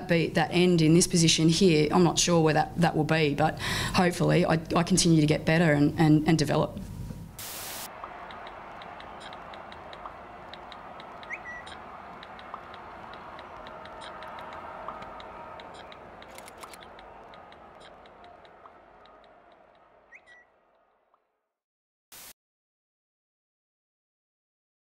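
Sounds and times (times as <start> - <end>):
steady hiss: 7.4 - 7.9.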